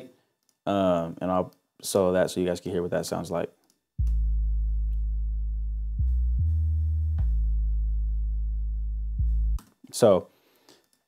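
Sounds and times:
deep bass notes: 0:04.0 - 0:09.6.

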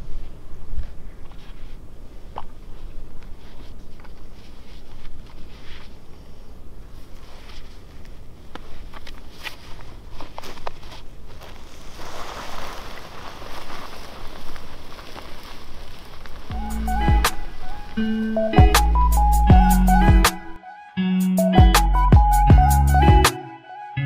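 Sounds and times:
footsteps crunching on gravel: 0:07.0 - 0:19.3
twigs snapping: 0:07.6 - 0:18.1
carcass dragging on ground: 0:09.3 - 0:18.6
music: 0:16.5 - 0:24.0.

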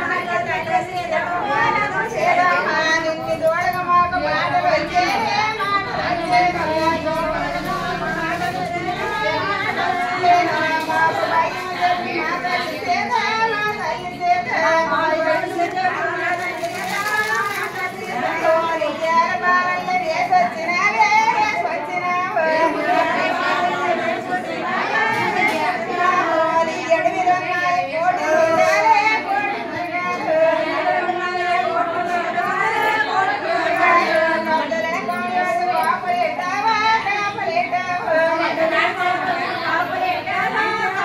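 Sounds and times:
women chattering: 0:00.0 - 0:41.0
women singing drawn-out notes: 0:00.0 - 0:41.0.

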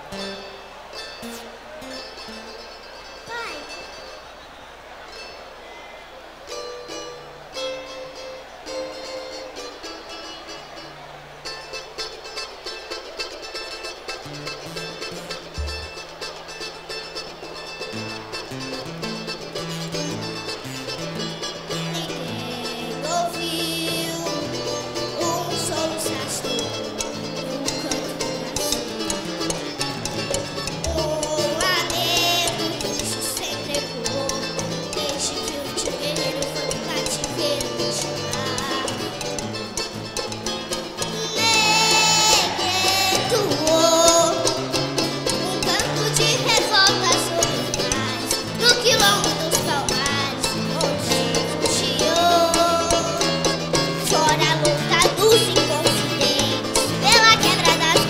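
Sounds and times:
plucked small guitar: 0:00.0 - 0:04.3, 0:06.5 - 0:58.0.

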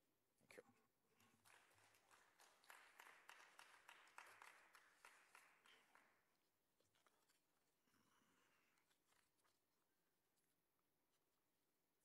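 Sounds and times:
sparse audience applause: 0:01.1 - 0:06.3.

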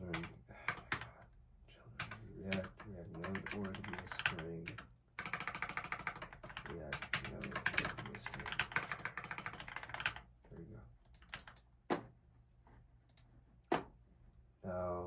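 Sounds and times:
rapid typing on keyboard: 0:00.0 - 0:01.2, 0:02.0 - 0:10.3, 0:11.0 - 0:11.6.

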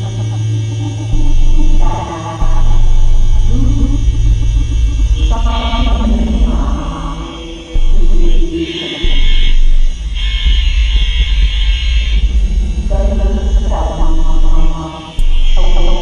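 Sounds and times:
electronic drone music: 0:00.0 - 0:16.0
bursts of high noise: 0:04.1 - 0:15.6.

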